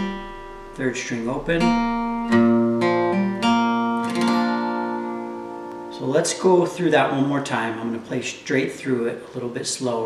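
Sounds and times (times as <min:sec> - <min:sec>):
acoustic guitar chord ringing: 0:00.0 - 0:08.3.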